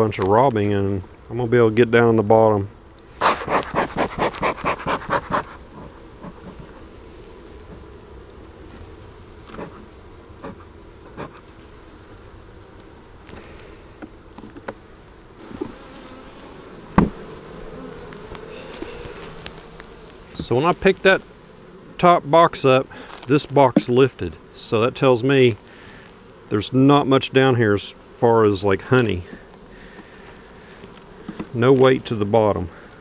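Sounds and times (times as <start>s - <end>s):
bees buzzing: 0.6s - 33.0s
knocks on wooden hive boxes: 16.9s - 17.3s, 31.2s - 31.5s.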